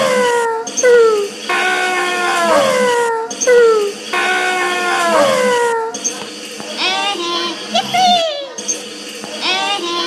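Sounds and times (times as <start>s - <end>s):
beat of recorded noises: 0.0s - 10.0s.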